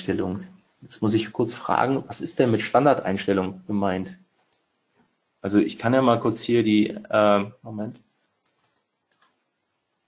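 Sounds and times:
faint computer clicks: 0:04.4 - 0:04.7, 0:07.9 - 0:09.4.

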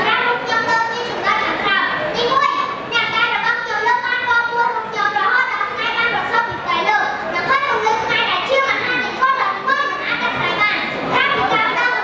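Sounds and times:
boy speaking over sound system: 0:00.0 - 0:12.0.

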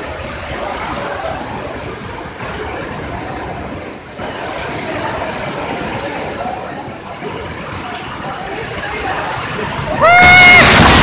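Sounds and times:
strong wind buffeting microphone: 0:00.0 - 0:11.0.

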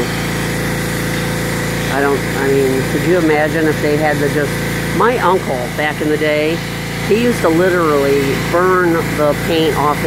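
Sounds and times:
pressure washer engine running: 0:00.0 - 0:10.0.

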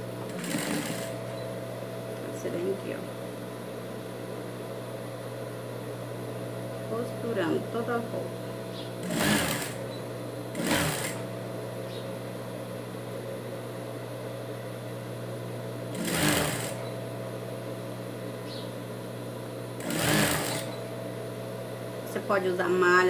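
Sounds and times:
sewing machine motor humming: 0:00.3 - 0:01.2, 0:09.0 - 0:09.8, 0:10.5 - 0:11.2, 0:15.9 - 0:16.8, 0:19.8 - 0:20.8
sewing machine stitching bursts: 0:00.3 - 0:01.2, 0:09.0 - 0:09.8, 0:10.5 - 0:11.2, 0:15.9 - 0:16.8, 0:19.8 - 0:20.7.

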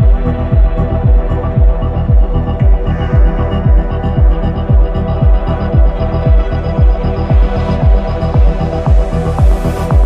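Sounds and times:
deep kick drum thumps: 0:00.0 - 0:10.0
electronic music: 0:00.0 - 0:10.0
synth pad chords: 0:00.0 - 0:10.0.

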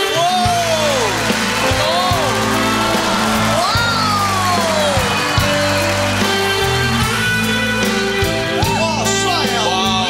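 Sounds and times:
stage music with low bass: 0:00.0 - 0:10.0.

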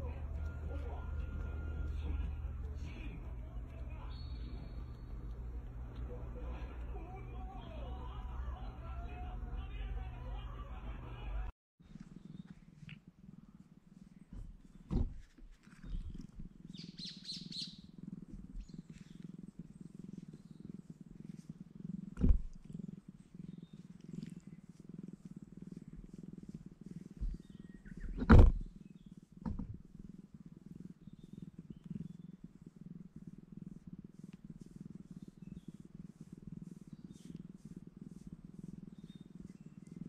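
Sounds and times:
cat purring: 0:00.0 - 0:40.0.

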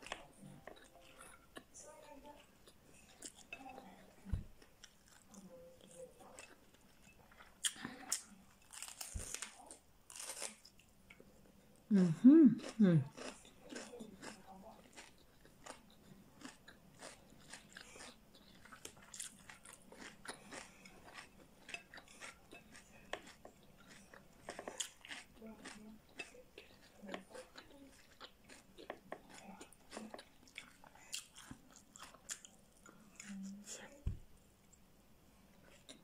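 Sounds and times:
chewing crisp raw vegetables: 0:00.0 - 0:11.2, 0:12.0 - 0:34.0
closed-mouth hums: 0:11.9 - 0:13.1.

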